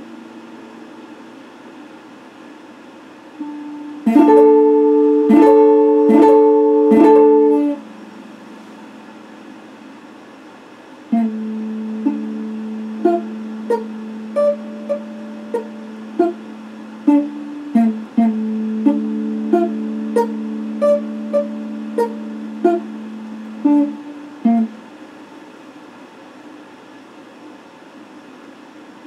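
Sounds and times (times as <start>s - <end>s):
electric guitar chords: 3.4s - 8.4s, 11.1s - 24.7s
electric guitar picked notes: 3.4s - 9.0s, 11.1s - 24.8s.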